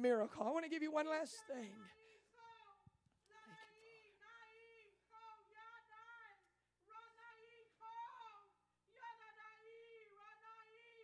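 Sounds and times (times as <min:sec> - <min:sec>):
woman singing wordless phrases: 0:00.0 - 0:11.0.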